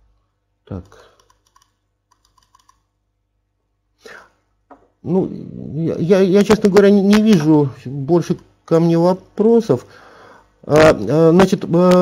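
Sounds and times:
typing on computer keyboard: 1.2 - 2.8.

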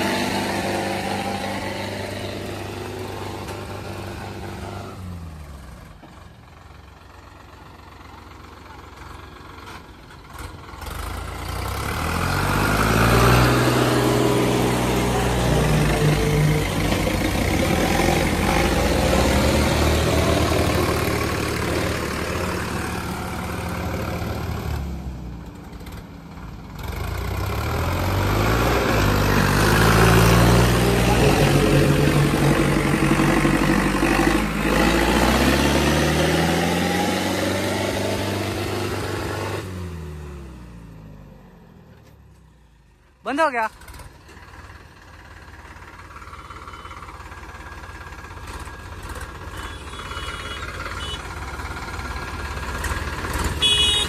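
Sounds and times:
diesel tractor engines at full throttle: 0.0 - 54.0.

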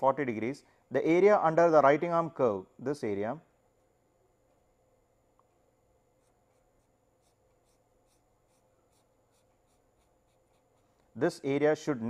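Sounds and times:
pen scratching on paper: 6.2 - 11.1.

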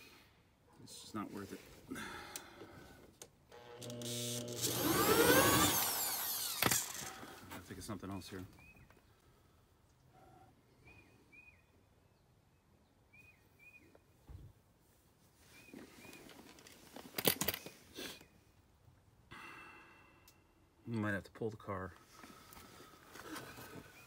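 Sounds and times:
sharp clatter: 4.6 - 7.2
bird chirping: 8.4 - 9.2.

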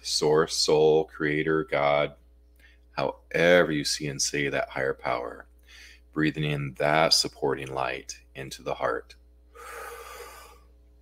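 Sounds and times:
man inhaling deeply: 5.6 - 6.1, 9.5 - 10.8.

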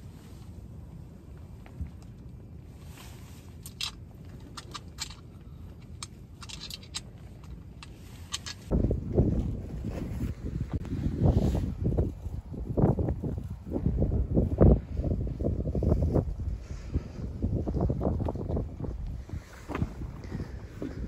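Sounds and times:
wind buffeting the microphone: 6.6 - 21.0.

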